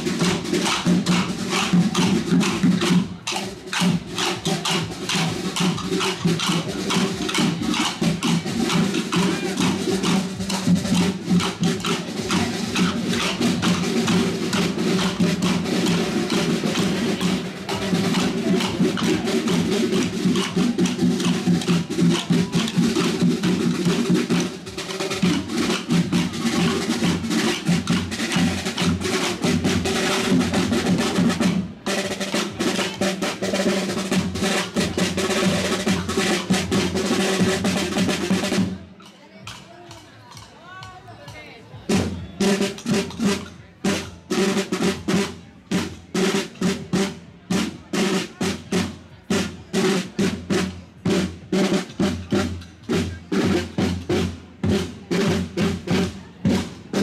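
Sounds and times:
side drums playing march rhythm: 0.0s - 57.0s.

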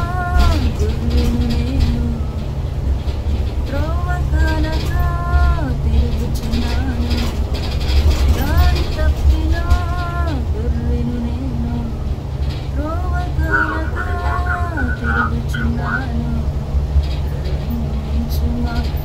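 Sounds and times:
bus rumbling: 0.0s - 19.0s.

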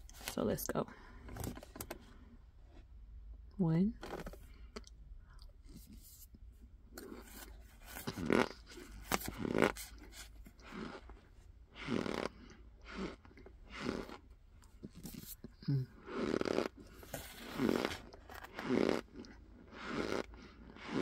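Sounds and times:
mouth crunching and chewing: 6.9s - 21.0s.

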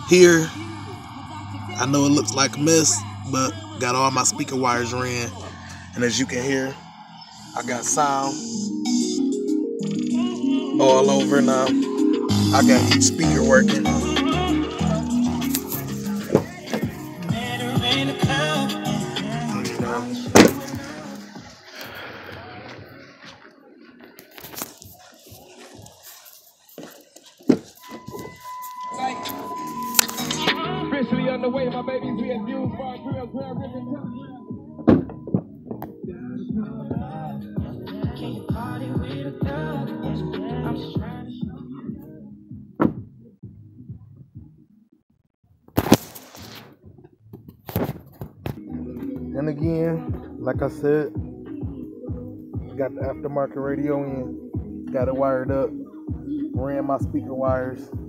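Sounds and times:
music with vocals from car speaker: 0.0s - 44.7s, 45.8s - 58.0s.

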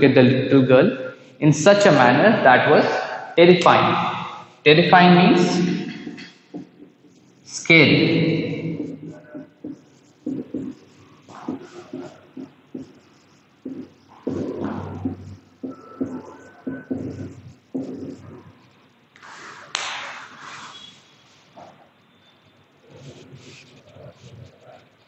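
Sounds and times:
marker writing on whiteboard: 0.9s - 22.0s, 22.8s - 25.0s.

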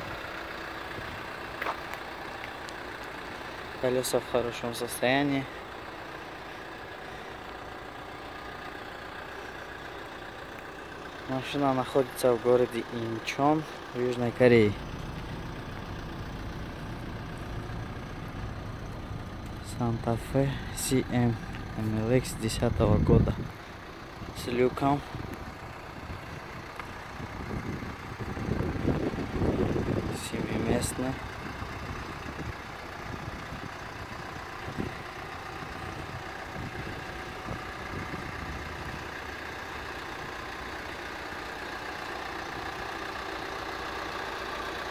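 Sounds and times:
suv engine idling: 0.0s - 44.9s.

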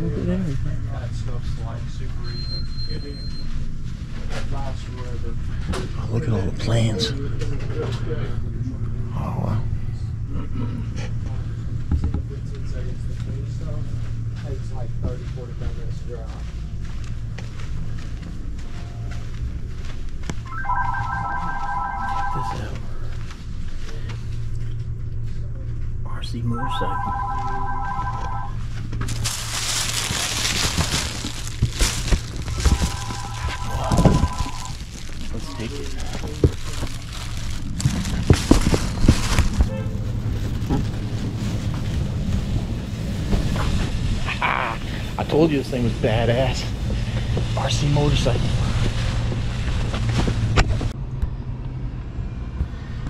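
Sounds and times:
low background rumble: 3.6s - 53.0s
electronic ringing tone: 20.5s - 22.8s, 26.5s - 28.6s, 32.6s - 34.7s.

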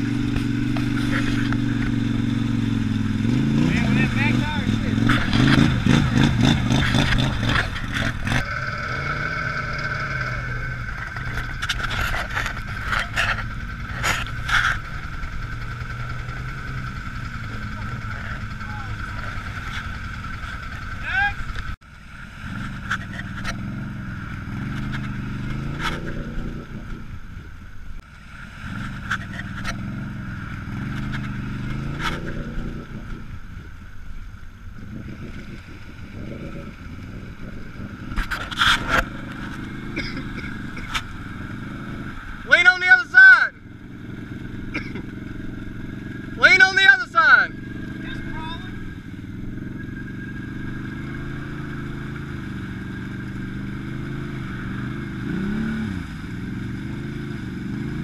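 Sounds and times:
wheels churning through mud: 0.0s - 26.9s
quad bike engine revving: 0.0s - 58.0s
person shouting: 21.0s - 21.4s.

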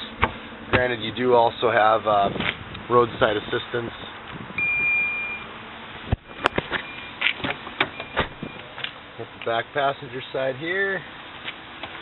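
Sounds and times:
car electronic beep: 4.6s - 5.5s, 6.4s - 7.2s, 7.8s - 8.7s
faint short beeps: 4.6s - 5.5s.

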